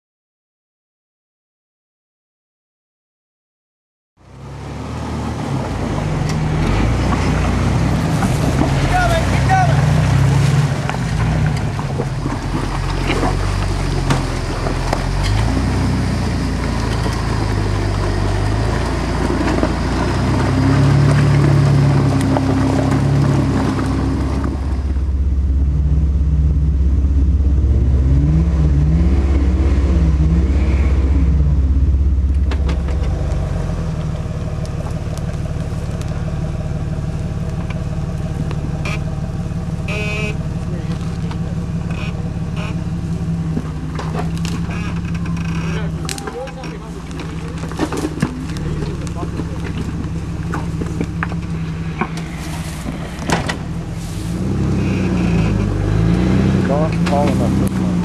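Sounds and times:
off-road vehicle engines: 4.2 - 58.0.

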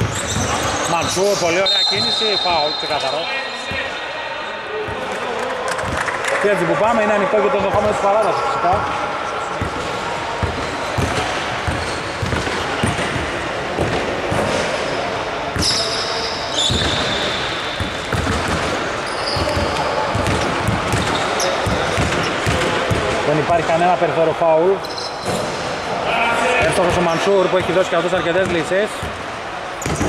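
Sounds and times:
basketball dribbling on hardwood: 10.4 - 13.9, 17.8 - 18.7.

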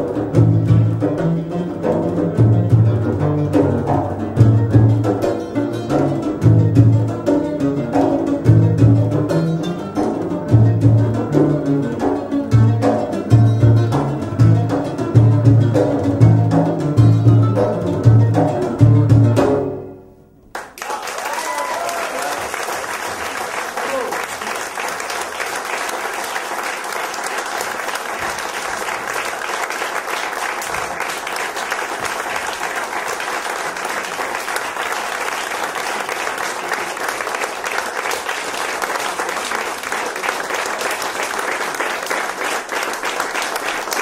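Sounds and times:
audience applauding: 20.5 - 44.0.

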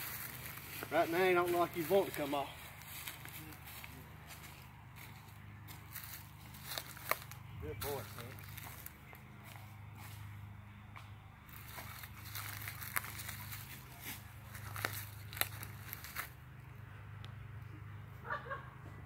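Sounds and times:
footsteps on dry leaves: 0.0 - 10.7, 11.4 - 16.5.

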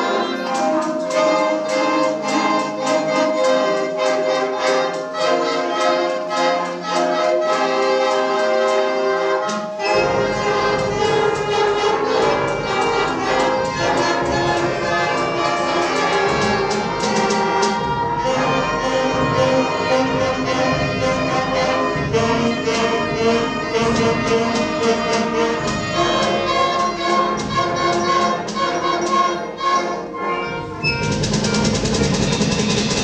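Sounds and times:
concert band playing fanfare: 0.0 - 33.0
percussion strokes: 0.0 - 33.0.

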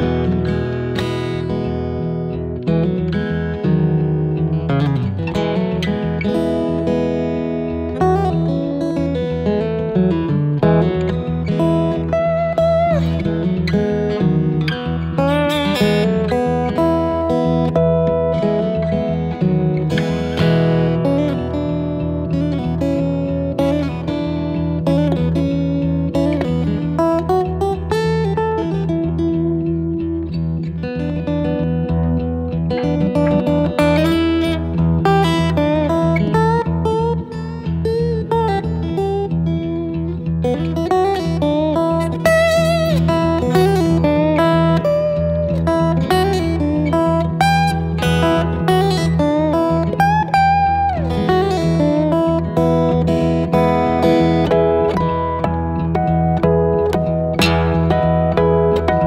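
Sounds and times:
fingerpicked acoustic guitar: 0.0 - 59.0
slide guitar notes: 0.0 - 59.0.

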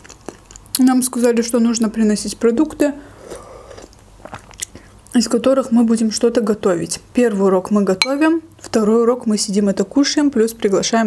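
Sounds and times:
soft chewing: 0.0 - 1.2, 3.2 - 5.0.

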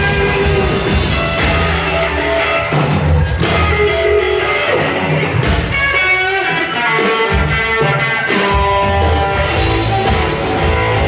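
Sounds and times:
blues band playing: 0.0 - 11.0
electric guitar: 0.0 - 11.0.

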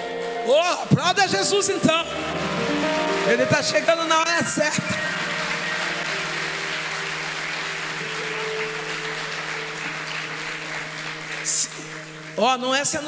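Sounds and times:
sustained keyboard chord: 0.0 - 13.0
congregation applauding: 1.0 - 13.0.

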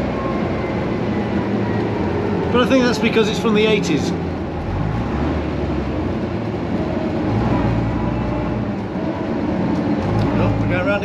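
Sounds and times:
bus diesel engine running: 0.0 - 11.0
road and body noise: 0.0 - 11.0.

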